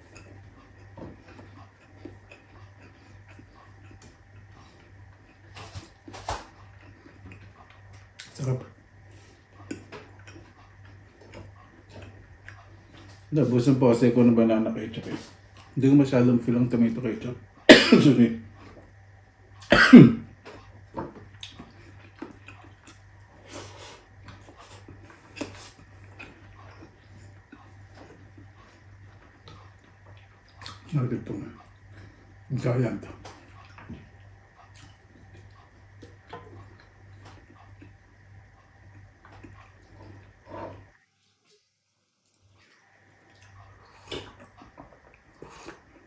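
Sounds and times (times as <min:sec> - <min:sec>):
low steady hum: 0:00.0 - 0:46.0.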